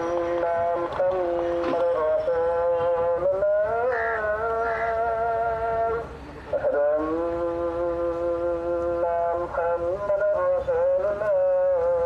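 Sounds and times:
person singing long held notes: 0.0s - 12.0s.

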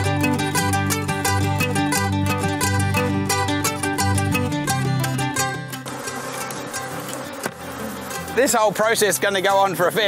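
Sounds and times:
background music: 0.0s - 10.0s
honeybees buzzing: 0.0s - 10.0s.

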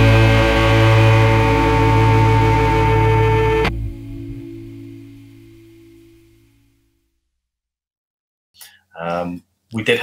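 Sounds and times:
rock band music: 0.0s - 5.6s
low chord ringing: 0.0s - 6.9s.

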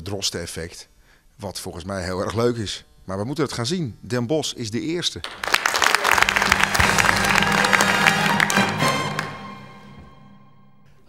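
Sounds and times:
audience applauding: 5.2s - 10.0s
music holding a low chord: 6.1s - 11.0s.

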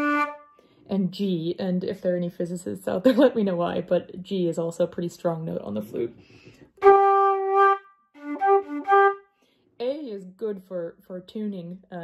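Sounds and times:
wooden flute playing a note: 6.8s - 9.2s.

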